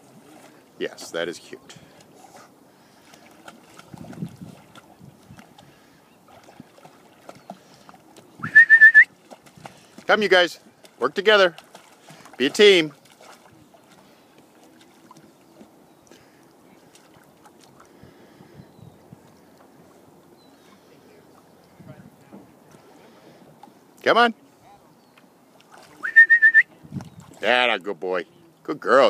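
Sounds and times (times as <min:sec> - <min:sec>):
dogs paddling in water: 0:00.0 - 0:28.7.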